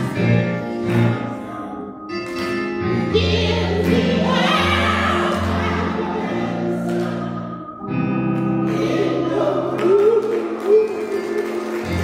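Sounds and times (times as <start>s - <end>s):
gospel choir singing: 0.0s - 2.0s, 2.7s - 12.0s
held instrumental chords: 0.0s - 12.0s.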